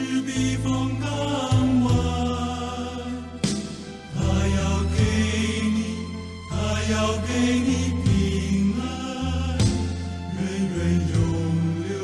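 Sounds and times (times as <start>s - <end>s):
slow hymn music: 0.0s - 12.0s.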